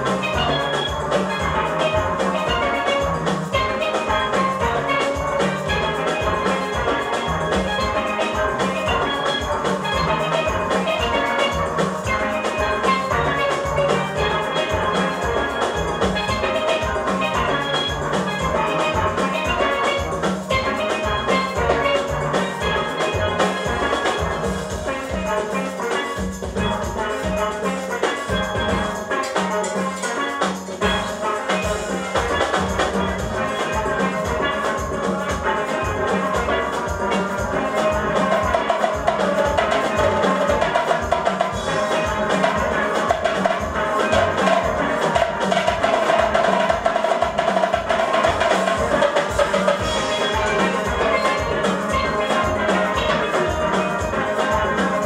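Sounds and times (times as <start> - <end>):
steel pans playing a tune: 0.0 - 55.0.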